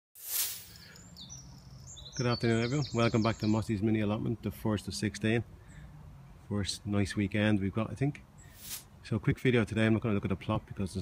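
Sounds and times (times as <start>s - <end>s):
brief rush of noise: 0.2s - 0.9s, 8.6s - 8.9s
small birds chirping: 0.7s - 8.9s.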